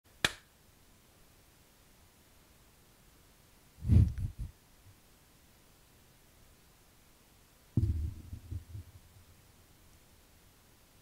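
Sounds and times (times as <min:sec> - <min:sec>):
sharp hand clap: 0:00.2 - 0:00.5.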